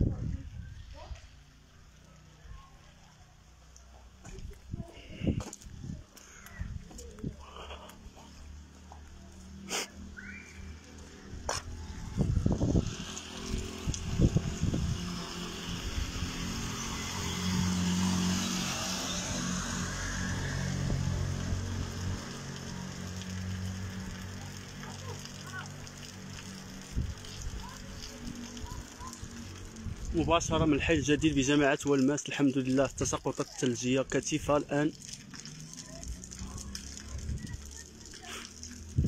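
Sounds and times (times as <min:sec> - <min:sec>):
tyres hissing through slush: 0:07.3 - 0:12.1, 0:12.9 - 0:29.9, 0:33.3 - 0:38.9.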